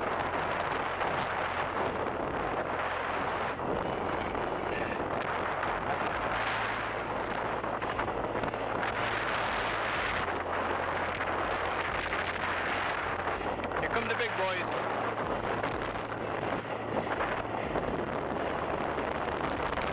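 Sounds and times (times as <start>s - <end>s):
bicycle tyre noise on asphalt: 0.0s - 19.9s
wind rushing: 0.0s - 19.9s.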